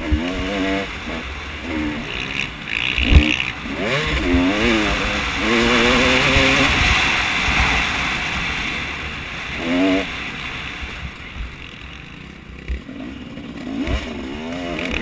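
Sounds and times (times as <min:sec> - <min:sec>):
wind rushing over camera: 0:00.0 - 0:13.0
dirt bike engine revving: 0:00.0 - 0:15.0.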